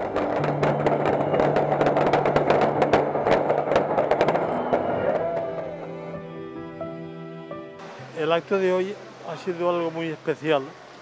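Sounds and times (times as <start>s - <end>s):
firecrackers popping and crackling: 0.0s - 5.9s
background music: 0.0s - 8.9s.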